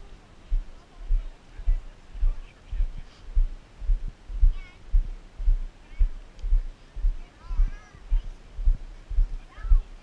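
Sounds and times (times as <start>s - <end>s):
footsteps on wooden boardwalk: 0.5s - 9.9s.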